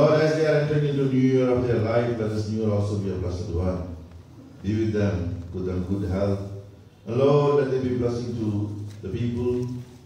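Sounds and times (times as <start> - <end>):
man speaking over microphone: 0.0 - 4.0, 4.6 - 10.0.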